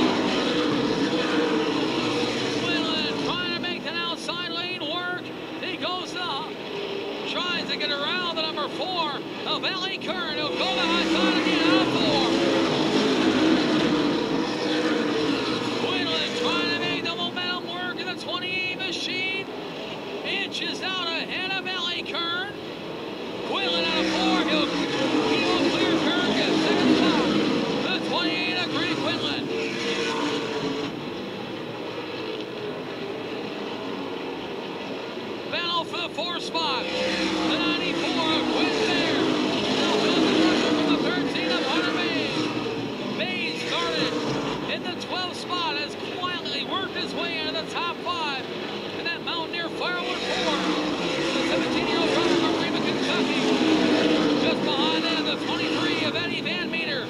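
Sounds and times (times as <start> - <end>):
race car engines passing: 0.0 - 57.0.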